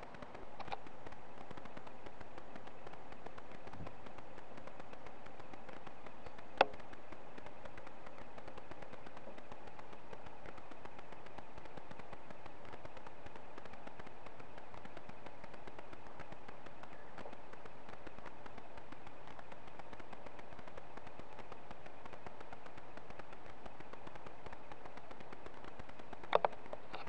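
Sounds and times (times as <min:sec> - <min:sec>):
faint ticks: 0:00.0 - 0:27.0
microphone hiss: 0:00.0 - 0:27.0.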